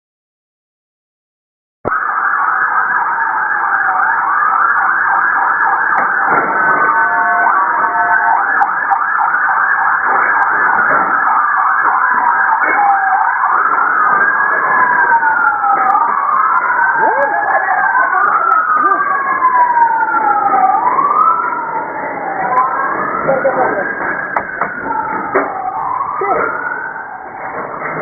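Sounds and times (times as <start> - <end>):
sirens yelping and wailing: 1.9 - 28.0.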